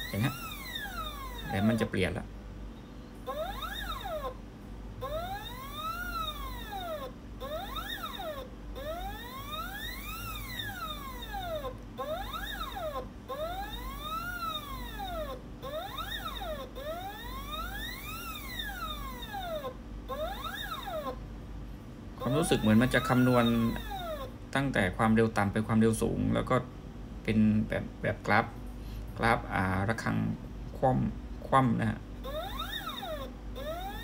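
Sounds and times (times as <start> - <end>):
stepper motor whine: 0.0 - 2.2, 5.0 - 21.2, 22.2 - 24.4, 32.2 - 34.0.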